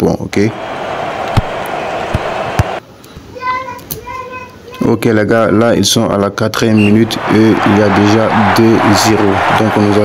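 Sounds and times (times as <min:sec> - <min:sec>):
stadium crowd noise: 0:00.5 - 0:02.8, 0:06.8 - 0:10.0.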